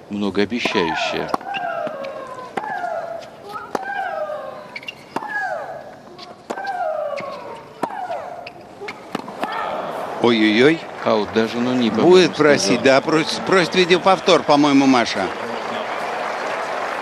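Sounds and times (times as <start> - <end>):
racquet hitting tennis ball: 0.6 - 10.0
player shrieking: 0.9 - 5.9.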